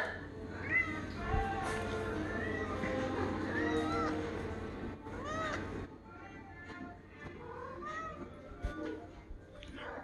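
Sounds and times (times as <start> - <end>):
cat meowing: 0.0 - 1.3, 2.2 - 4.3, 5.1 - 8.4
background music: 0.0 - 10.0.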